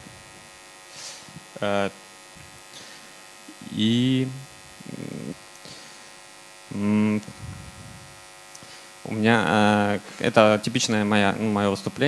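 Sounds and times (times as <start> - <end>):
electrical mains hum: 0.0 - 12.0
man saying uh into microphone: 1.5 - 2.0, 3.5 - 5.4, 6.7 - 8.0, 9.0 - 12.0.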